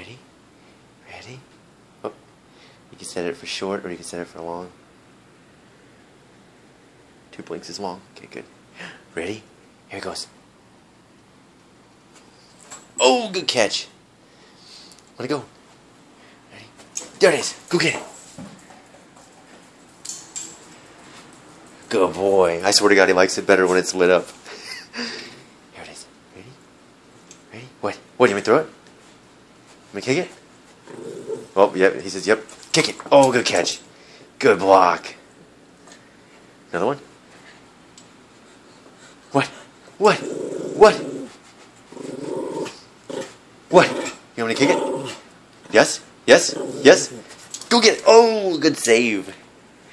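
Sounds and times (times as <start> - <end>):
small dog growling: 30.8 - 31.6, 40.0 - 45.3, 46.3 - 47.3.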